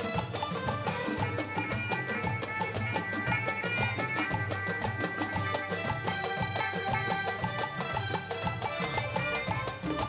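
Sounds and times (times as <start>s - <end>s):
hand drums beating: 0.0s - 10.0s.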